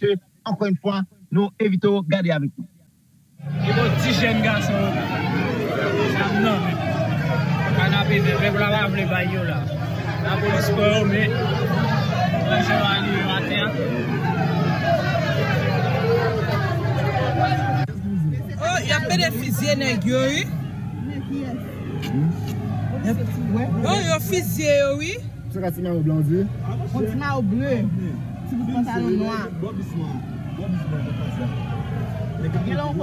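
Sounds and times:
people talking: 0:00.0 - 0:02.7, 0:03.4 - 0:33.0
vehicle engine humming: 0:03.3 - 0:33.0.

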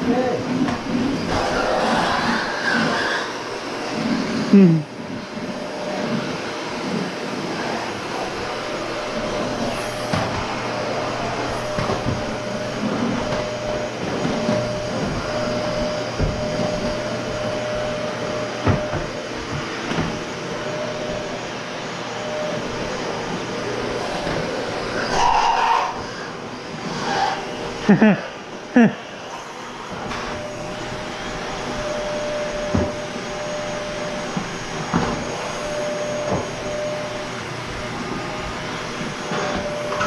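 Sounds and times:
vacuum cleaner running: 0:00.0 - 0:40.0.

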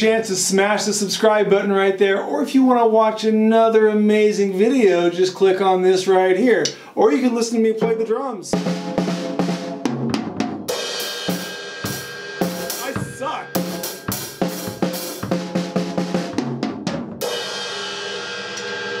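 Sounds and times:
drum kit groove: 0:07.6 - 0:19.0
cymbals ringing: 0:10.7 - 0:15.2.

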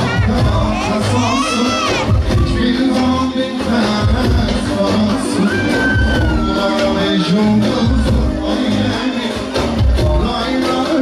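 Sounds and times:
crowd noise: 0:00.0 - 0:11.0
dance music: 0:00.0 - 0:11.0.

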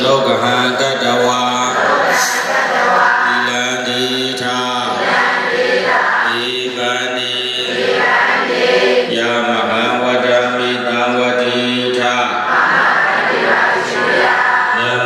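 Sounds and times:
voices chanting: 0:00.8 - 0:15.0.

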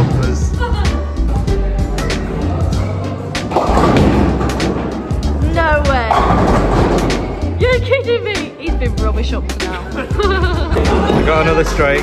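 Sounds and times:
background music: 0:00.0 - 0:12.0
bowling ball rolling down lane: 0:06.1 - 0:07.4.

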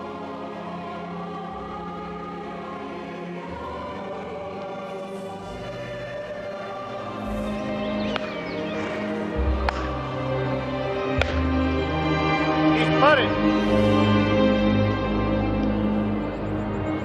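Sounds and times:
choral music with low drone: 0:00.0 - 0:17.0
sharp hand claps: 0:09.6 - 0:09.9, 0:11.2 - 0:11.5.

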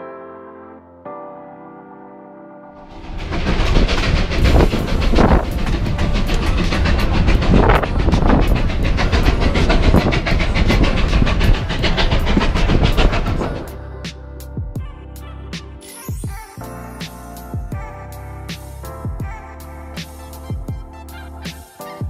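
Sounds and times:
train wheels clacking on track: 0:02.8 - 0:13.8
rushing wind: 0:02.8 - 0:14.0.

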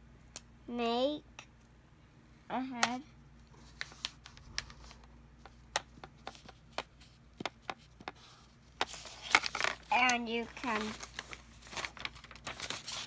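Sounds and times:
marker tapping and scratching on paper: 0:05.4 - 0:09.0
paper rustling: 0:07.9 - 0:13.0.

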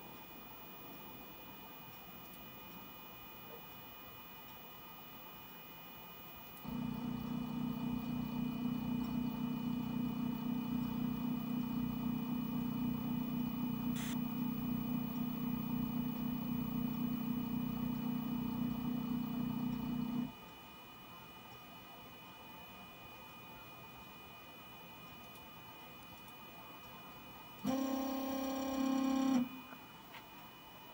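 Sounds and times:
stepper motors humming: 0:06.7 - 0:20.3, 0:27.6 - 0:29.8.

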